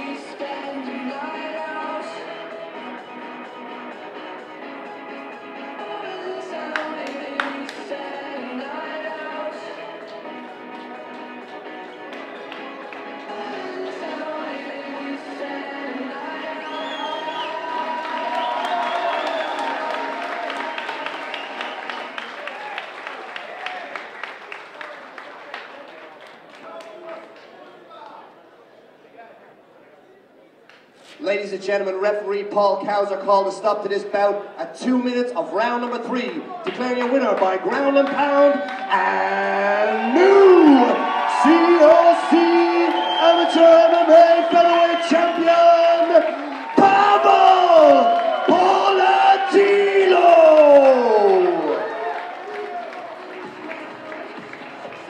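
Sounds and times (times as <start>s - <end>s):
background music over pa: 0.0s - 22.3s
crowd voices: 0.0s - 55.0s
scattered clapping: 6.6s - 8.1s, 10.8s - 13.5s, 17.6s - 28.2s, 36.2s - 39.1s, 39.9s - 55.0s.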